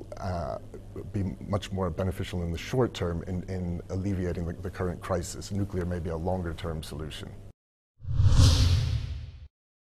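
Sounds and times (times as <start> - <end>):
whoosh sound effect: 8.0 - 9.5.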